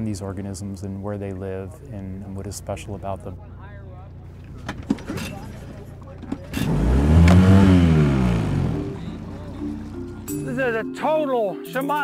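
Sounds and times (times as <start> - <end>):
engine craft passing by: 2.3 - 10.8.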